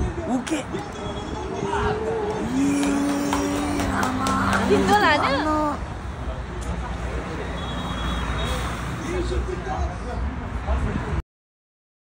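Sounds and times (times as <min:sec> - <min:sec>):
low rumble of road traffic: 0:00.0 - 0:11.2.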